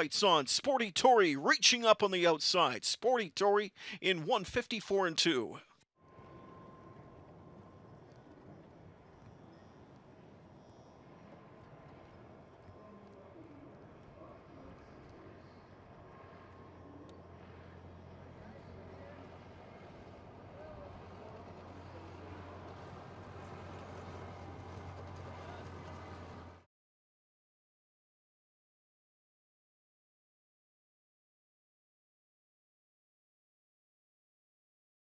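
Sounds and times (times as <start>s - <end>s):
distant voices: 6.6s - 26.6s.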